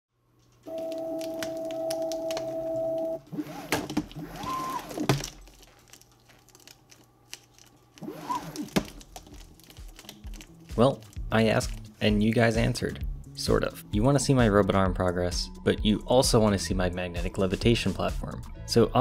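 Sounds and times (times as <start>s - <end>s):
stepper motor whine: 2.6s - 5.1s.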